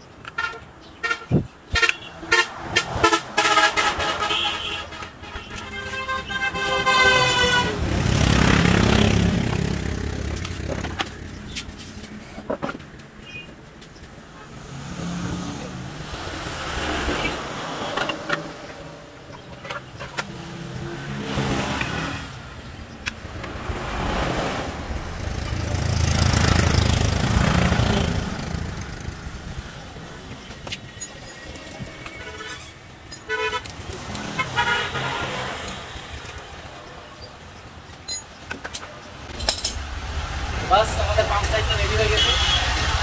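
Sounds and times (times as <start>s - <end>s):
motor traffic passing: 1.1s - 43.0s
short horn toots: 42.2s - 42.9s.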